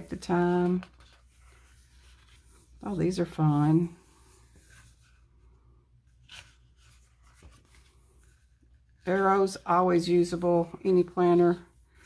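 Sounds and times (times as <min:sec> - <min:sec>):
page turning: 0:00.0 - 0:05.3, 0:06.1 - 0:09.8.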